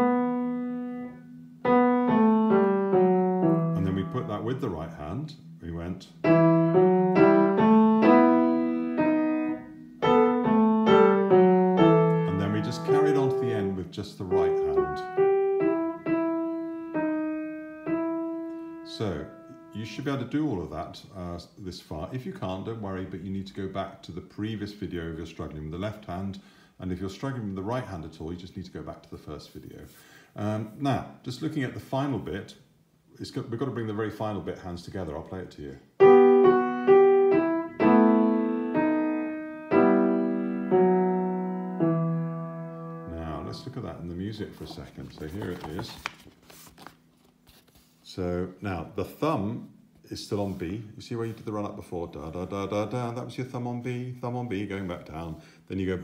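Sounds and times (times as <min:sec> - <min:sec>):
piano single notes: 0:00.0 - 0:20.0, 0:36.0 - 0:43.9.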